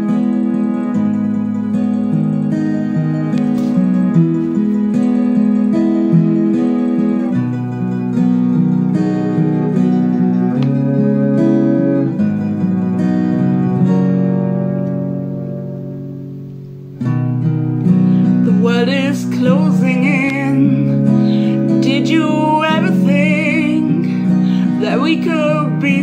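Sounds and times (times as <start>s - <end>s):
acoustic guitar chords: 0.0s - 26.0s.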